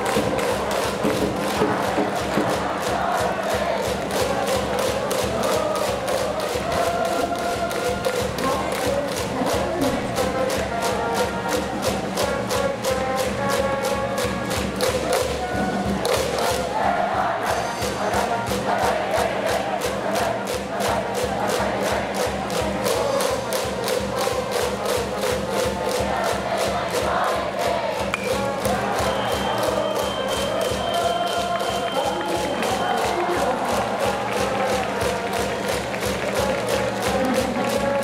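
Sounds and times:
crowd chanting and singing: 0:00.0 - 0:38.0
music: 0:00.0 - 0:38.0
steady drum beat: 0:00.0 - 0:38.0.

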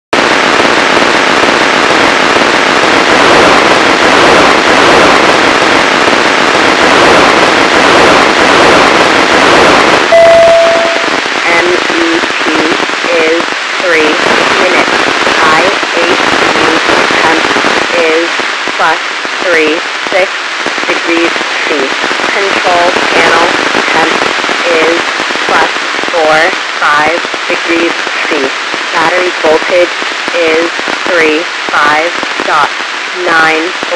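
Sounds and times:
radio hiss and crackle: 0:00.1 - 0:33.9
steady beep: 0:10.1 - 0:11.1
voice reading out over radio: 0:10.2 - 0:20.3, 0:20.9 - 0:33.9.

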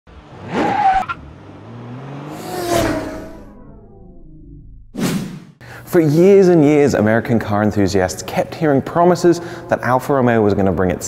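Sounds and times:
car whooshing past: 0:00.1 - 0:05.6.

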